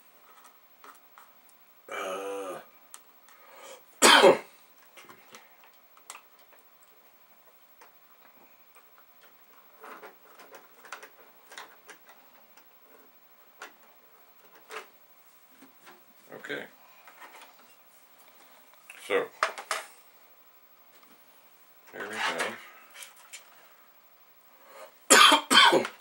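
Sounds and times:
person coughing: 4.0 - 4.5, 25.1 - 26.0
faint clicks of small parts: 4.8 - 14.9.

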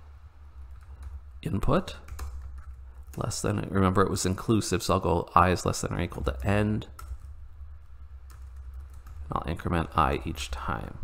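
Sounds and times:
steady low hum: 0.0 - 11.0
computer keyboard keystrokes: 2.0 - 3.3, 6.3 - 7.3, 8.2 - 9.2.

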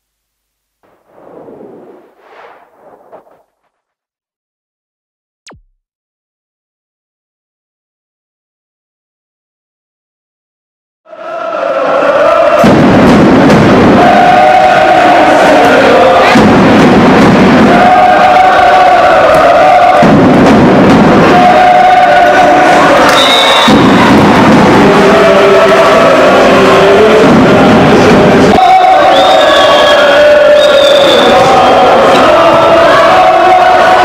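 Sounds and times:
crowd chanting: 11.1 - 34.0.

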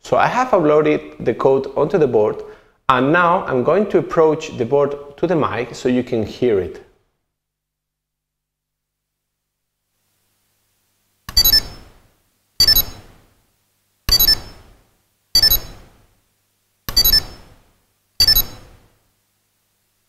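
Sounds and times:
piezo buzzer tone jingles: 11.3 - 12.0, 12.6 - 13.2, 14.1 - 14.7, 15.4 - 16.0, 16.9 - 17.6, 18.2 - 18.8.

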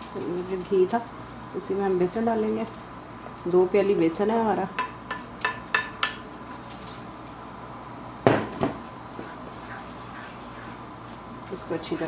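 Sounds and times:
spatula clattering on pan: 4.8 - 6.4.

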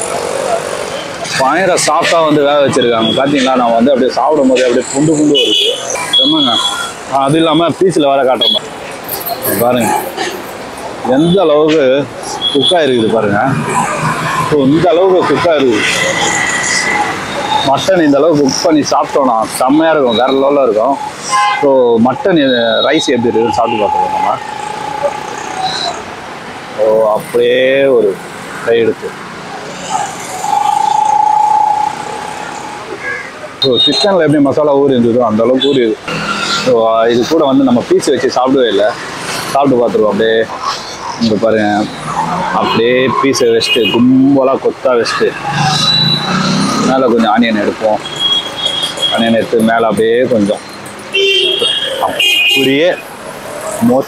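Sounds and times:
street traffic: 0.0 - 54.0
man talking: 1.2 - 8.6, 9.2 - 10.2, 11.0 - 16.3, 17.5 - 24.5, 26.8 - 29.2, 33.6 - 36.1, 36.7 - 45.4, 46.7 - 48.0, 49.1 - 50.6, 51.4 - 53.0, 53.7 - 54.0
vehicle horn: 51.1 - 52.7.

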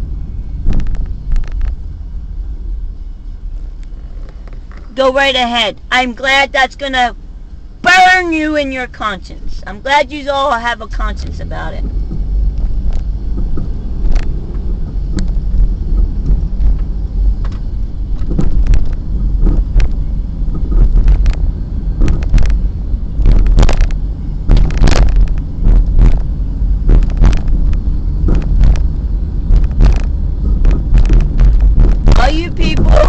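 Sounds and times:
car road rumble inside cabin: 0.0 - 33.0
irregular knocks and clicks: 11.8 - 22.6, 23.2 - 32.2.

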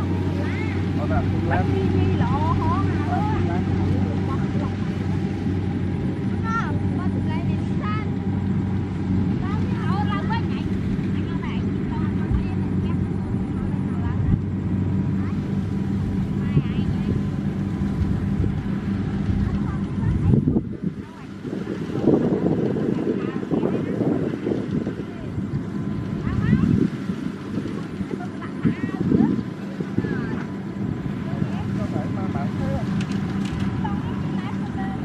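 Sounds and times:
diesel engine humming: 0.0 - 35.0.

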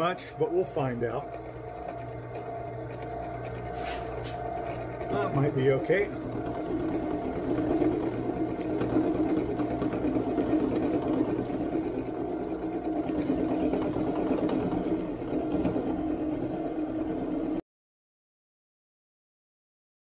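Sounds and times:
drill press motor hum: 0.0 - 17.6
end mill cutting metal: 0.0 - 17.6.

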